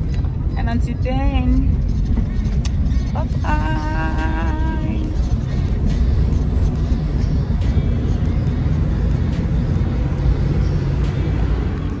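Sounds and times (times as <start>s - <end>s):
road rumble inside car: 0.0s - 12.0s.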